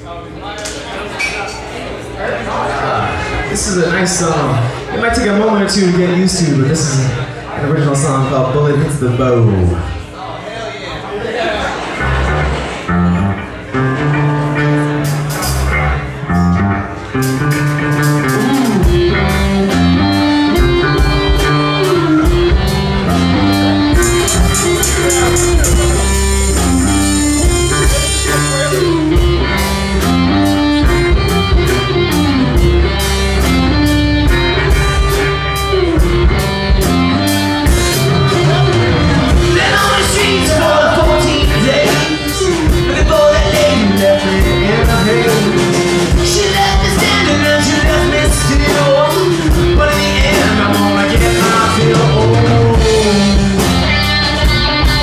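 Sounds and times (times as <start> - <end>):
rock band playing: 2.6 - 10.2, 11.6 - 55.0
electric bass: 11.7 - 55.0
electric guitar: 11.8 - 55.0
regular drum strokes: 23.9 - 29.4.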